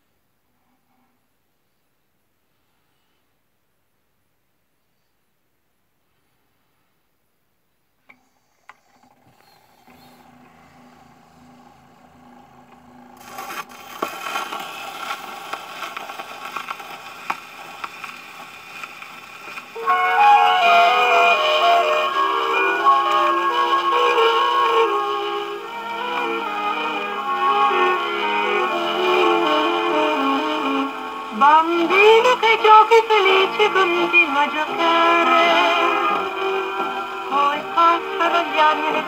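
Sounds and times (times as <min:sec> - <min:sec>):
faint hum: 0:00.0 - 0:39.0
record surface hiss and crackle: 0:00.0 - 0:39.0
record player clicks: 0:12.7 - 0:19.7.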